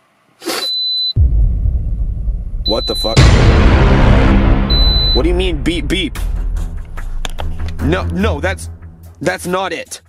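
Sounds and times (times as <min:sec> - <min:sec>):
loud low rumble: 0:01.2 - 0:09.0.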